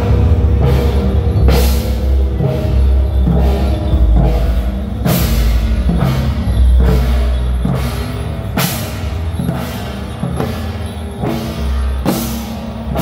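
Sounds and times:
marching drums: 0:00.0 - 0:13.0.

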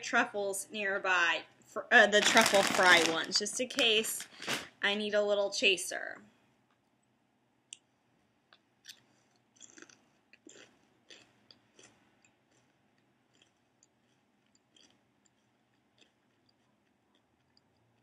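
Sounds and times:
potato chip crunching: 0:02.2 - 0:04.6, 0:08.8 - 0:18.0.

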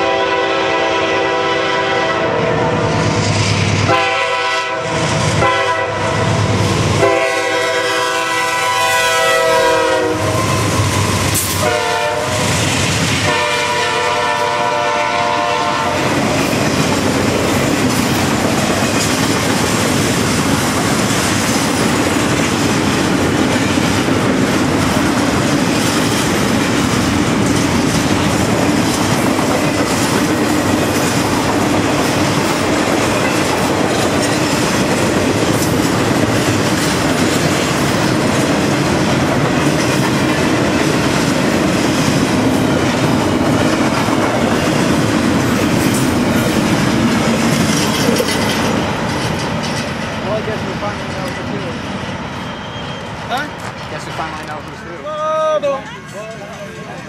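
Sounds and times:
locomotive horn: 0:00.0 - 0:02.9, 0:03.9 - 0:06.4, 0:07.0 - 0:12.5, 0:13.2 - 0:16.2
freight train rumbling past: 0:00.0 - 0:57.0
wheels clattering over rail joints: 0:16.2 - 0:52.2.

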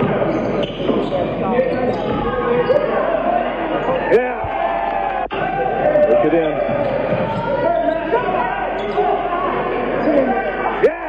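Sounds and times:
sneaker squeaks: 0:00.0 - 0:03.0, 0:06.1 - 0:09.2.

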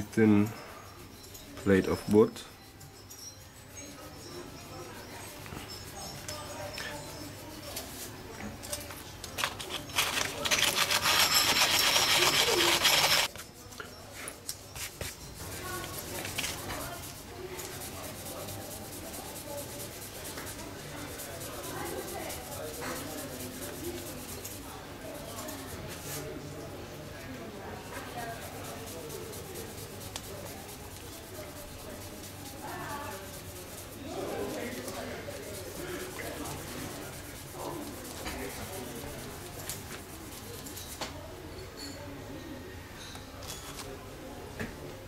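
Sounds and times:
scraping small wooden patches: 0:07.1 - 0:13.5, 0:28.0 - 0:41.0
loud raspy wood rubbing: 0:09.5 - 0:13.3.

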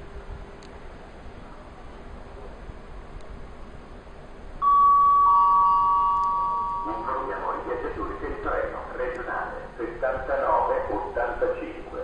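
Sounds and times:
low background rumble: 0:00.0 - 0:12.0
two-tone public address chime: 0:04.6 - 0:08.2.

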